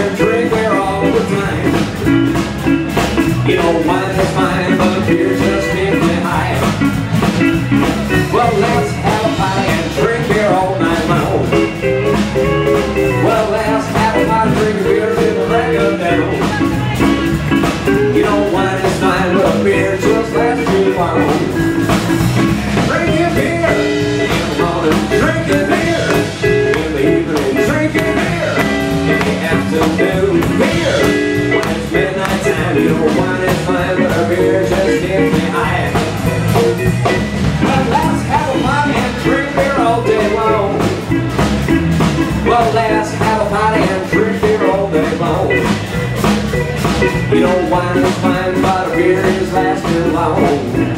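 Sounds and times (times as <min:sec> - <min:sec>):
live blues band playing: 0:00.0 - 0:50.9.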